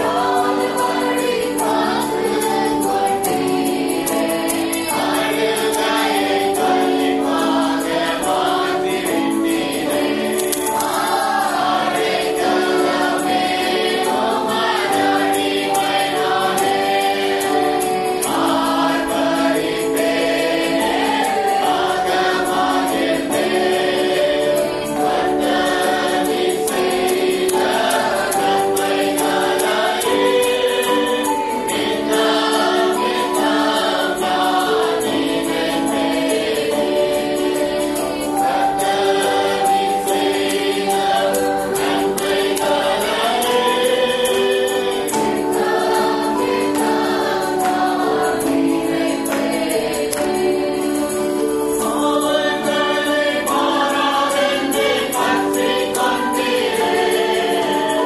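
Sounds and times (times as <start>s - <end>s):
choir singing gospel: 0.0s - 58.0s
rhythmic percussion: 0.0s - 58.0s.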